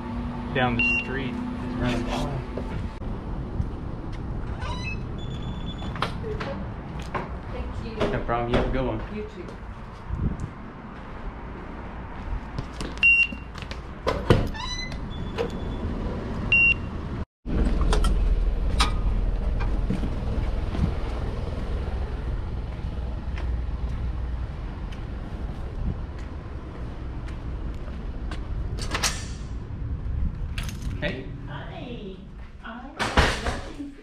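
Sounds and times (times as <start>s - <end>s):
low traffic rumble: 0.0s - 33.9s
short high beeps: 0.8s - 1.2s.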